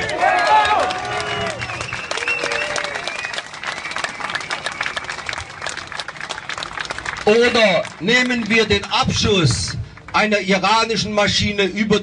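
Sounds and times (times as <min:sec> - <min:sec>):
crowd applauding: 0:00.0 - 0:10.6.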